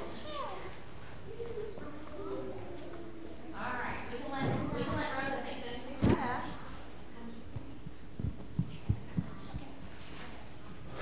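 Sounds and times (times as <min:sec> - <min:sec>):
low room hum: 0:00.0 - 0:11.0
soft dull low thumps: 0:04.3 - 0:05.3, 0:06.0 - 0:06.6, 0:07.5 - 0:09.8.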